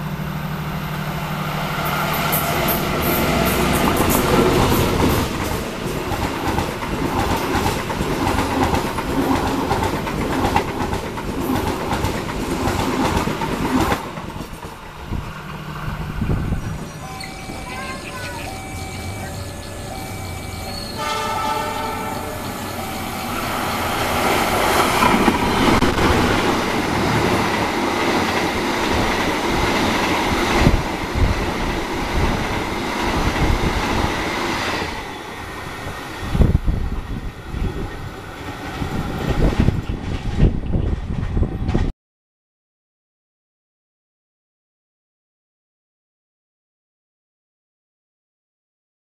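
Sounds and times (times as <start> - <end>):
train wheels rushing: 0.0 - 41.9
two-pitch signal tone: 16.9 - 23.8
train horn: 17.0 - 23.6.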